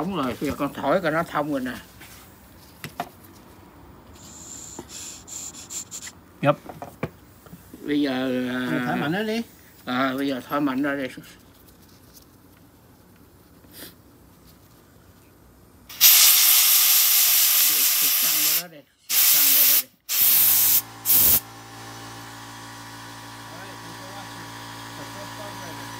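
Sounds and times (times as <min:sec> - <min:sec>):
air hissing through carburetor: 0:04.2 - 0:06.2, 0:15.9 - 0:22.2.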